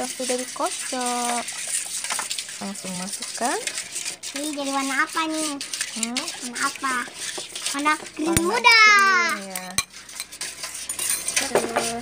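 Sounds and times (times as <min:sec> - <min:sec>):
whisk clicking in metal pot: 0:00.0 - 0:12.0.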